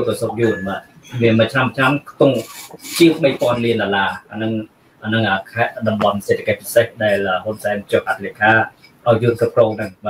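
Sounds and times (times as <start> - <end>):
man talking over video call: 0.0 - 10.0.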